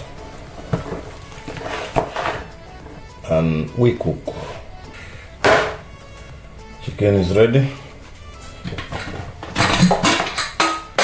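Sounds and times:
sharp knock: 0:05.4 - 0:05.8.

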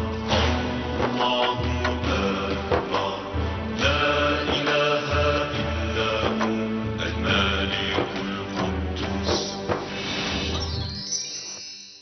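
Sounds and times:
television theme music: 0:00.0 - 0:12.0.

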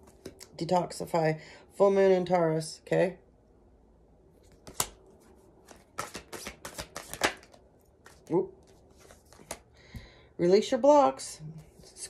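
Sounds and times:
cards being shuffled: 0:04.4 - 0:09.8
card snap: 0:04.6 - 0:05.0, 0:05.7 - 0:08.2
quick card clicks and flicks: 0:06.0 - 0:07.6.

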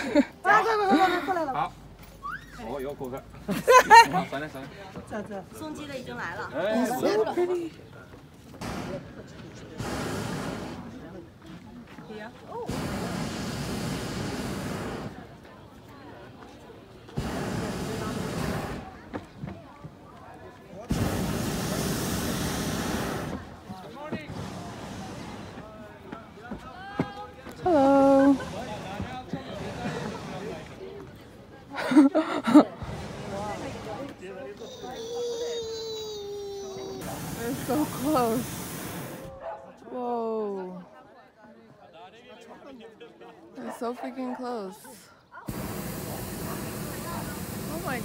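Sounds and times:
propane burner blasts: 0:08.5 - 0:11.2, 0:12.6 - 0:15.4, 0:17.1 - 0:19.1, 0:20.8 - 0:26.0, 0:27.7 - 0:30.8, 0:32.7 - 0:34.4, 0:36.9 - 0:39.3, 0:45.5 - 0:48.0.

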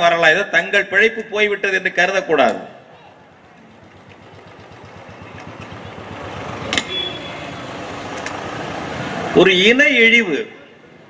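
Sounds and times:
vehicle passing on road: 0:03.2 - 0:09.8.

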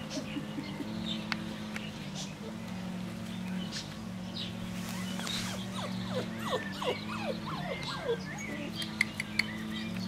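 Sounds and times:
steady low hum: 0:00.0 - 0:10.0
puppies yelping and whining: 0:04.8 - 0:08.8.

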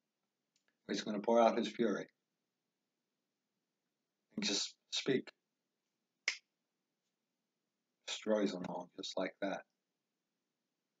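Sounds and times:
finger snap: 0:06.2 - 0:06.5.

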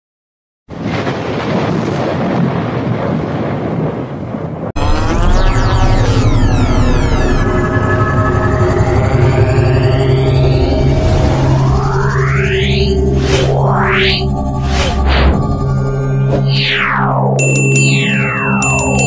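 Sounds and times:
electronic intro sting: 0:04.8 - 0:18.7.

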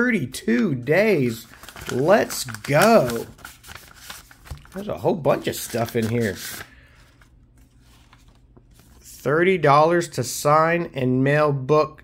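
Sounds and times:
low room hum: 0:00.0 - 0:12.0
paper handling: 0:01.0 - 0:09.2.

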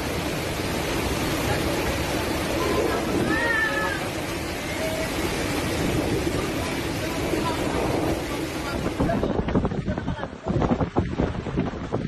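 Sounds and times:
heavy rain: 0:00.0 - 0:12.0
strong wind: 0:00.0 - 0:12.0.

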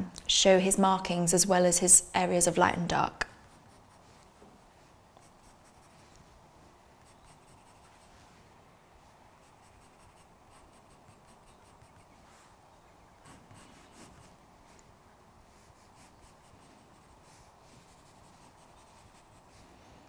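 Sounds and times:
pencil scratching on paper: 0:05.2 - 0:06.0, 0:07.0 - 0:08.1, 0:09.4 - 0:12.2, 0:13.2 - 0:14.4, 0:15.6 - 0:19.6.

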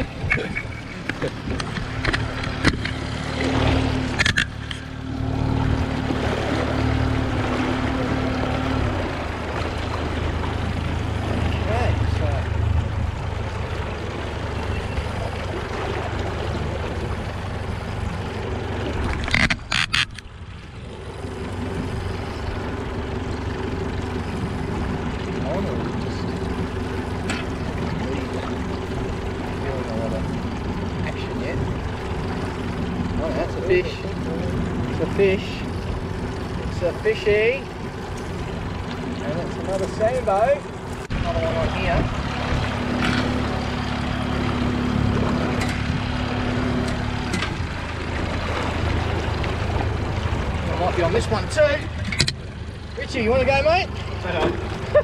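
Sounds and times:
outboard motor running: 0:00.0 - 0:55.0
water rushing past hull: 0:00.0 - 0:55.0.

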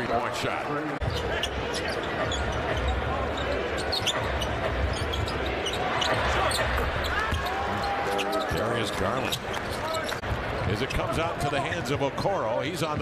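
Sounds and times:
crowd din: 0:00.9 - 0:13.0
shoe squeaks and clicks: 0:01.0 - 0:10.2.

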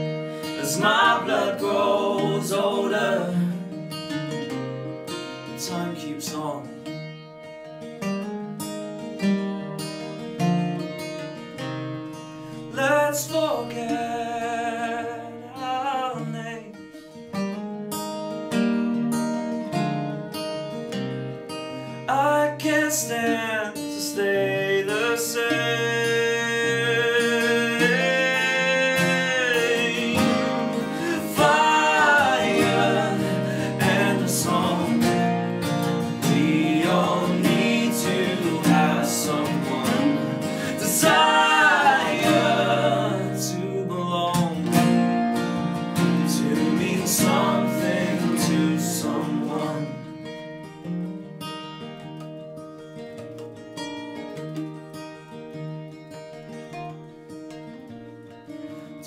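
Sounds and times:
strummed acoustic guitar: 0:00.0 - 0:59.0
person singing: 0:00.4 - 0:03.8, 0:12.8 - 0:16.8, 0:22.1 - 0:44.9, 0:46.2 - 0:50.1
plucked mandolin: 0:51.9 - 0:55.5.

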